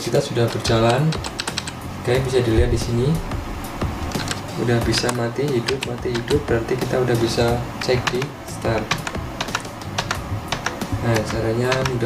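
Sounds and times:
keyboard keys clicking: 0.8 - 1.8, 4.0 - 6.5, 7.8 - 12.0.

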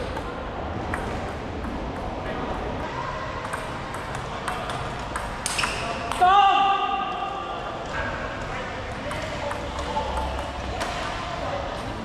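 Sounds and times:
player shouting: 6.2 - 7.6.

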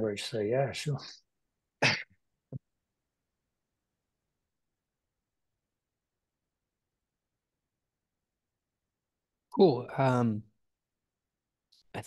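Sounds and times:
person coughing: 1.8 - 2.2
small throat sound: 1.8 - 2.6.

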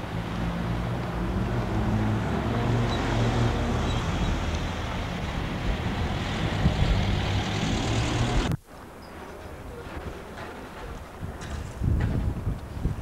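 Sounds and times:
street noise: 0.0 - 13.0.

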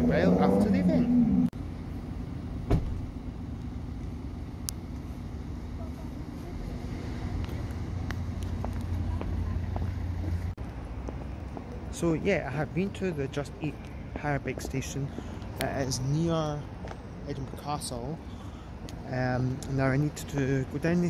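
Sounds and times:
low rumble of road traffic: 0.0 - 21.0.

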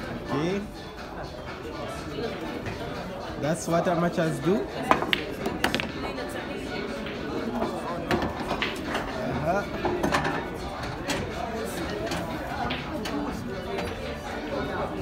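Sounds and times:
voices chattering: 0.0 - 15.0
cue striking ball: 4.8 - 6.2
pool balls clicking: 4.8 - 9.2.

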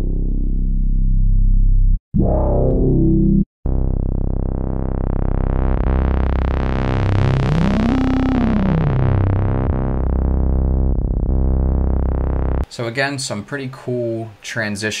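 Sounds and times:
synth bass notes: 0.0 - 12.7.

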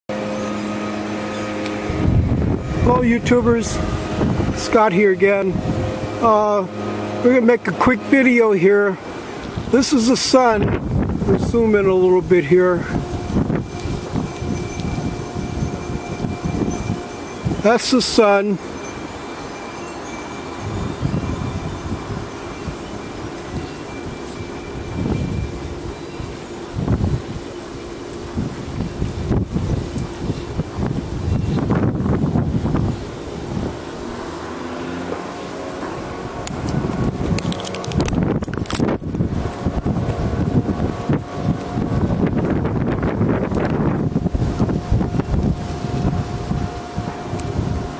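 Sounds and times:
mechanical hum with tones: 0.1 - 12.0, 12.8 - 47.9
wind buffeting microphone: 0.1 - 47.9.

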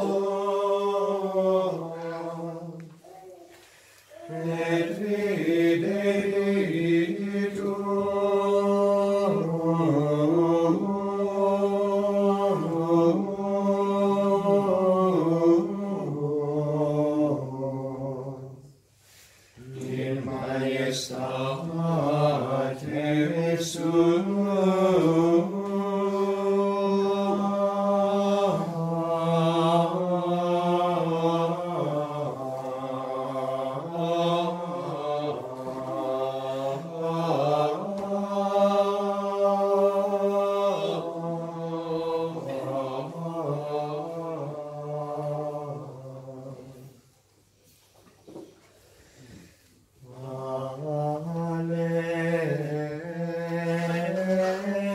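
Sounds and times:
men singing plainchant: 0.0 - 2.9, 4.1 - 18.5, 19.6 - 47.0, 50.0 - 54.9.

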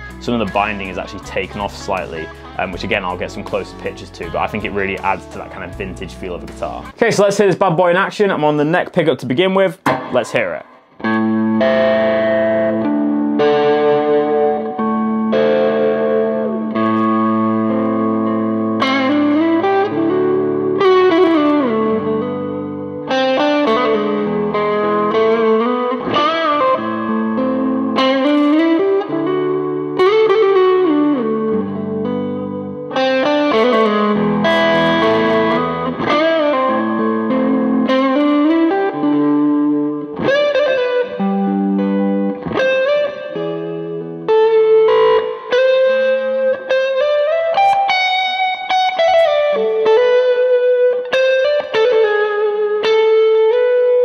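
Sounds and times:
overdriven electric guitar lead: 0.0 - 7.0, 9.8 - 54.0.

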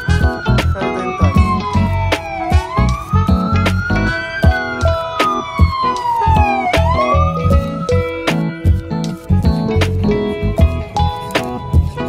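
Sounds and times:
siren wailing: 0.0 - 8.7
music with steady beat: 0.0 - 12.0.

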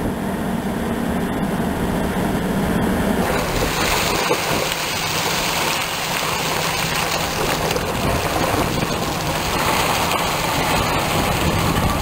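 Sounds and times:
engine running: 0.0 - 12.0
water churning: 3.2 - 12.0.

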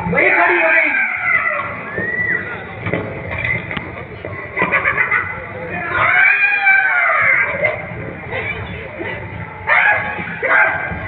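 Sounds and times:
shrill vocal cries over speakers: 0.0 - 2.6, 5.7 - 11.0.

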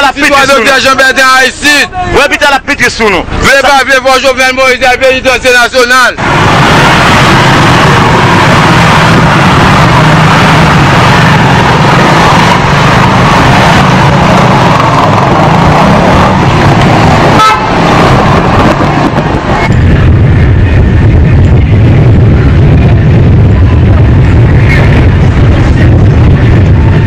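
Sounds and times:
distorted street traffic: 0.0 - 27.0
vehicle horns: 17.2 - 18.1.

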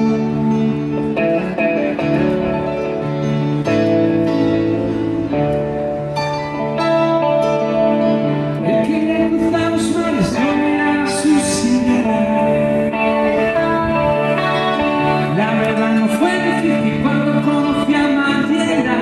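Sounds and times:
electric guitar: 0.0 - 19.0
keyboard chords: 0.0 - 19.0.

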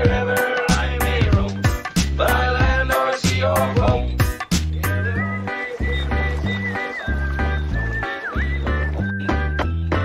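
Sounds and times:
stepping bass line: 0.0 - 10.0.

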